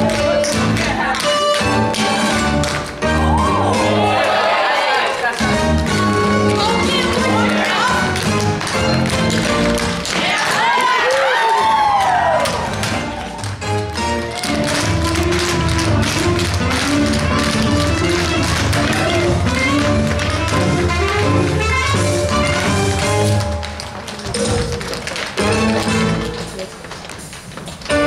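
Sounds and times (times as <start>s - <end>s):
show tune with brass: 0.0s - 11.0s, 12.2s - 26.5s
music: 0.0s - 28.0s
tap shoes striking floor: 12.0s - 28.0s.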